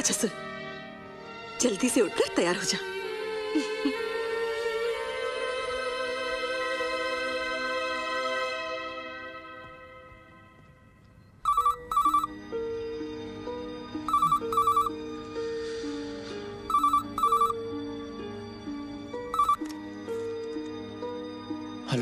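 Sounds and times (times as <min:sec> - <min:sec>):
soft background music: 0:00.0 - 0:22.0
desk telephone ringing: 0:11.4 - 0:12.3, 0:14.1 - 0:15.0, 0:16.7 - 0:17.6, 0:19.3 - 0:19.7.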